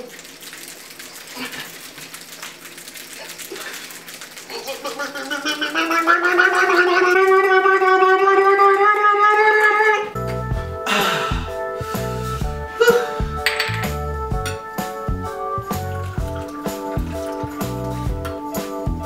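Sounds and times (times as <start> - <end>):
person's drawn-out vocal cry: 4.6 - 10.2.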